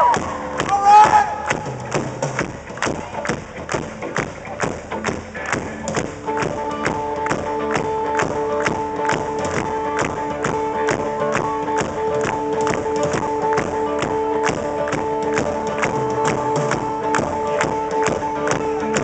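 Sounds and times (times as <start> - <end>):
drum beat: 0.0 - 19.0
electric guitar chords: 0.0 - 19.0.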